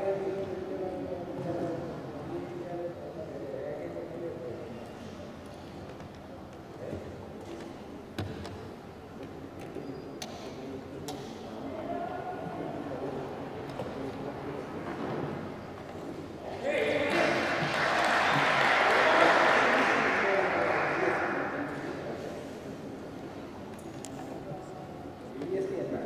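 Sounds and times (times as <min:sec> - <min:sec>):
voices talking in a hall: 0:00.0 - 0:26.0.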